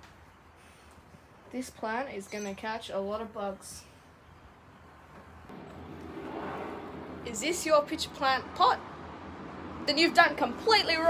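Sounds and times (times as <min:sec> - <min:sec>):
vehicle passing: 0:05.5 - 0:11.0.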